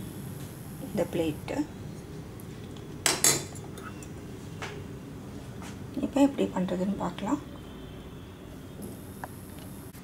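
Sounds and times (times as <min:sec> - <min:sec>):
kitchenware clattering: 0:03.0 - 0:04.1.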